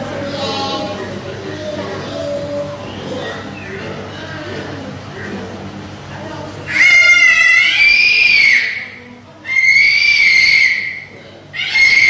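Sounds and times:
low background voice: 0:00.0 - 0:09.6
child screaming: 0:06.7 - 0:12.0.

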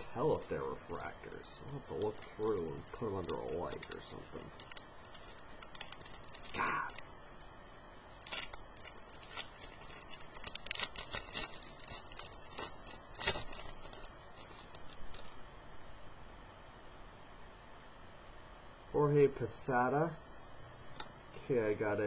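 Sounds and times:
foil wrappers crinkling and tearing: 0:00.0 - 0:15.4
cards clicking and rustling: 0:01.6 - 0:07.1.

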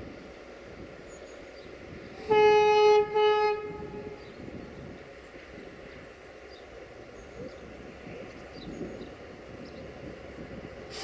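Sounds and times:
locomotive horn blasts: 0:02.2 - 0:04.2.

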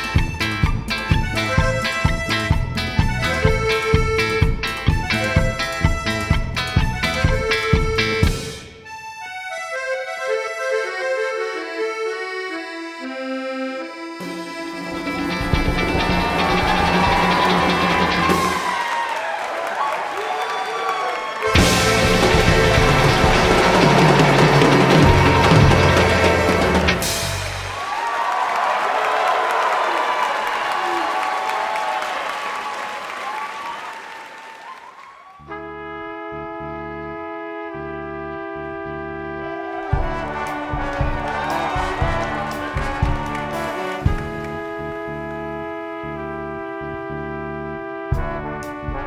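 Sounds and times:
jazz band low notes: 0:00.0 - 0:08.7, 0:21.4 - 0:27.8, 0:35.5 - 0:49.0
button accordion melody: 0:00.0 - 0:18.7, 0:21.4 - 0:27.6, 0:35.5 - 0:49.0
audience applauding: 0:14.9 - 0:35.6, 0:39.5 - 0:45.5.

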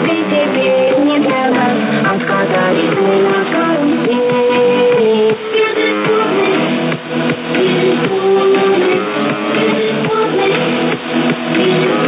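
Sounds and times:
music over shortwave radio: 0:00.0 - 0:12.0.

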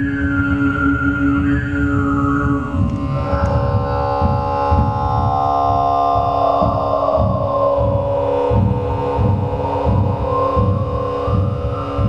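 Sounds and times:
overtone whistle: 0:00.0 - 0:04.7
rough low pulsing rumble: 0:00.0 - 0:12.0
throat singing drone: 0:00.0 - 0:12.0.

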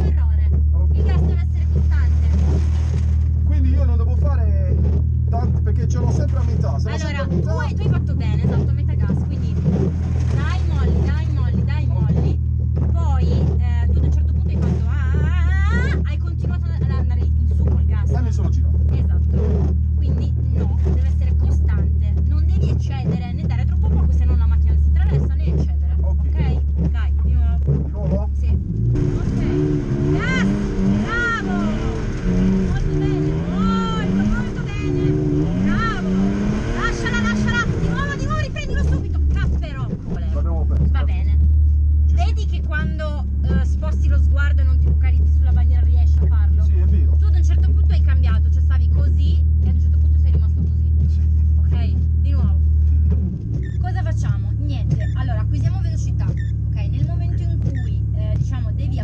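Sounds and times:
car engine idling and revving: 0:00.0 - 0:59.0.

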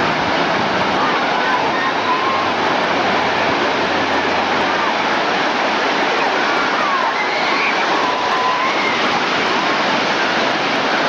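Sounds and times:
waves breaking in shallows: 0:00.0 - 0:11.0.

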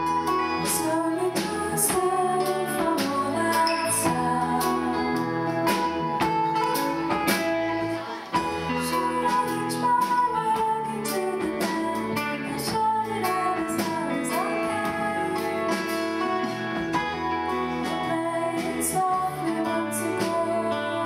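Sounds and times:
woman singing: 0:00.0 - 0:06.6, 0:08.3 - 0:16.5, 0:17.7 - 0:21.0.

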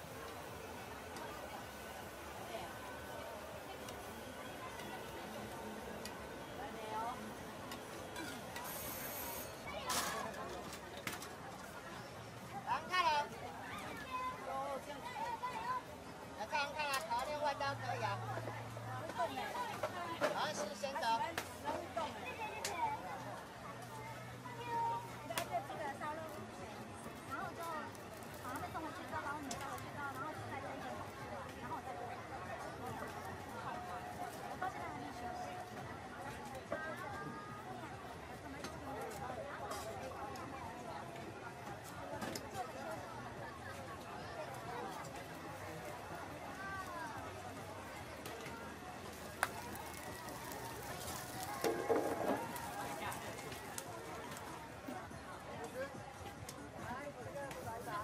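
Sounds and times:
chatter of many voices: 0:00.0 - 0:58.0
people talking: 0:00.0 - 0:58.0.

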